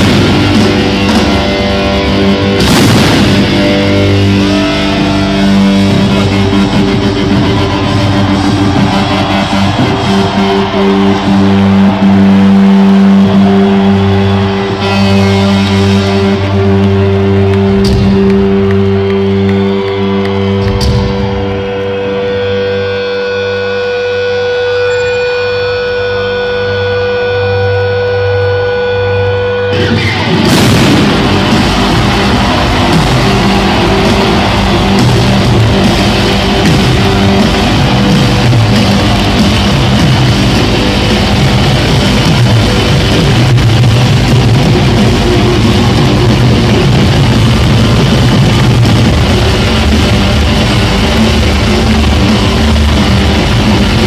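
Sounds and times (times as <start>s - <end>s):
distorted guitar chord ringing: 0.0s - 54.0s
rock band playing: 0.0s - 54.0s.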